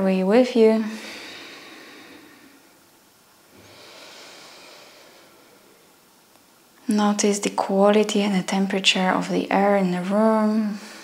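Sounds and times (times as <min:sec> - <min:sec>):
person breathing softly: 0:00.8 - 0:02.8, 0:03.5 - 0:05.9, 0:10.7 - 0:11.0.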